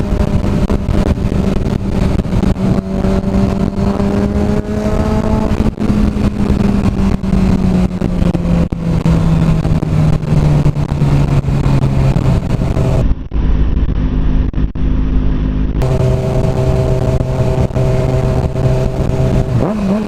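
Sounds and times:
motorcycle engine running: 0:00.0 - 0:20.0
wind buffeting on microphone: 0:00.0 - 0:20.0.

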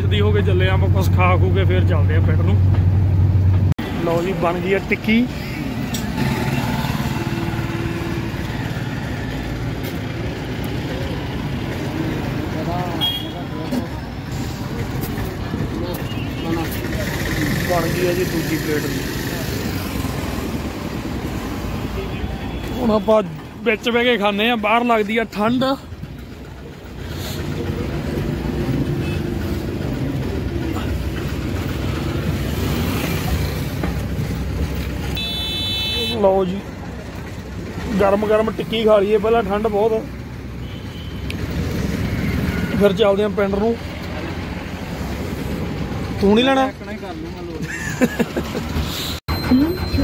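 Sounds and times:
engine idling: 0:24.0 - 0:32.2.

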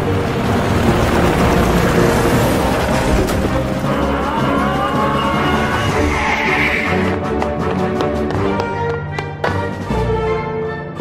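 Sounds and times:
background music: 0:00.0 - 0:11.0
loud engine sound effect: 0:00.8 - 0:07.2.

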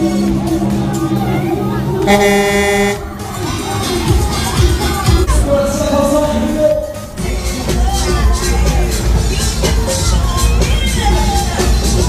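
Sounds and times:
loud fairground ride music: 0:00.0 - 0:12.0.

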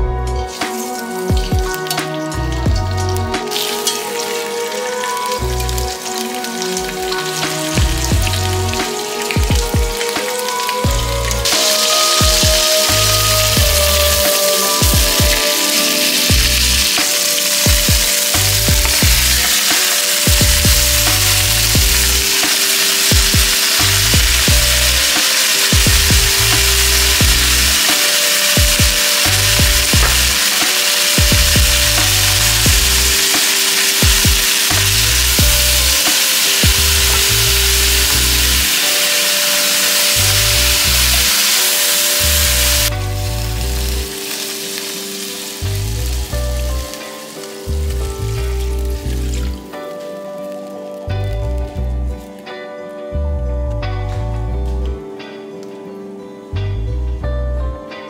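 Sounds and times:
food sizzling in hot fat: 0:00.4 - 0:51.6.

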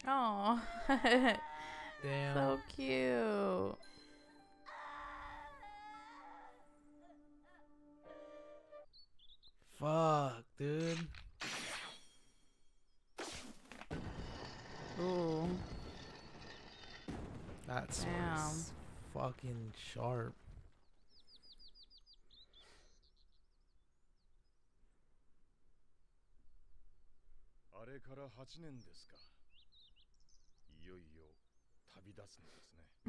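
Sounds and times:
faint bird chirping: 0:00.0 - 0:09.8, 0:20.8 - 0:25.0, 0:27.8 - 0:33.0
faint wavering crying voice: 0:00.5 - 0:03.8, 0:04.5 - 0:07.8.

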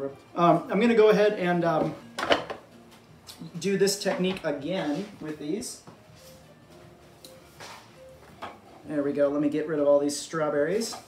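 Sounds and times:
faint background music: 0:00.0 - 0:11.0
kitchenware clicks and knocks: 0:01.8 - 0:02.7
person speaking: 0:03.3 - 0:05.9.

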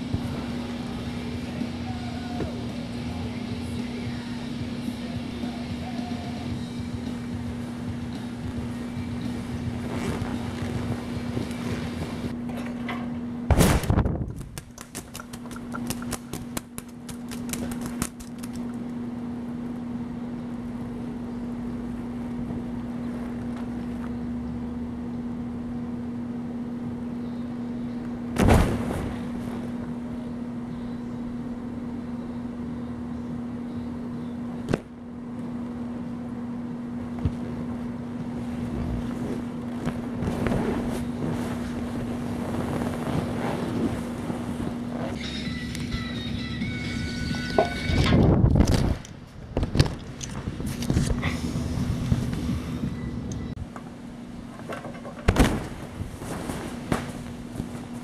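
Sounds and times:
blower humming: 0:00.0 - 0:58.0
music: 0:00.3 - 0:12.3, 0:45.2 - 0:48.3
wind noise on microphone: 0:07.5 - 0:12.4, 0:13.5 - 0:14.8, 0:37.4 - 0:45.2, 0:47.5 - 0:53.6.

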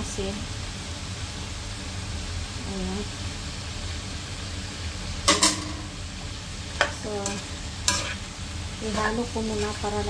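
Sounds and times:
vegetables sizzling in frying pan: 0:00.0 - 0:10.0
spatula scraping and knocking pan: 0:06.7 - 0:08.3.

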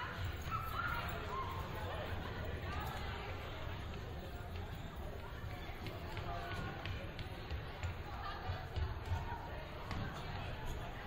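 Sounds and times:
people running on hardwood court: 0:00.1 - 0:11.0.

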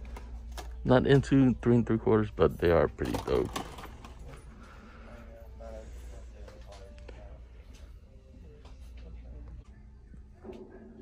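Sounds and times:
low shop hum: 0:00.0 - 0:11.0.

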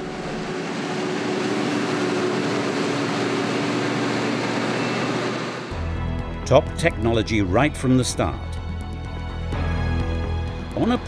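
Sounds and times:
harvester engine and chopping machinery: 0:00.0 - 0:05.8.

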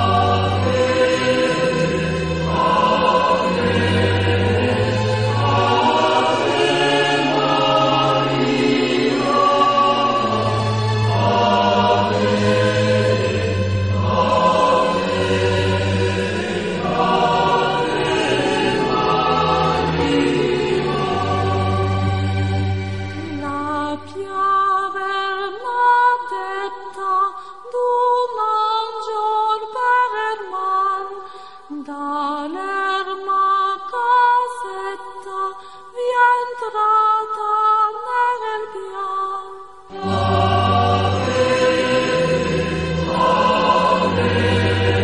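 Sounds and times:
choir singing religious music: 0:00.0 - 0:25.8, 0:39.6 - 0:45.0.

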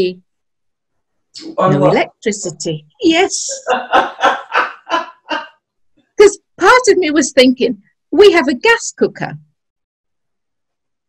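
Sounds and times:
woman laughing: 0:03.4 - 0:05.4.

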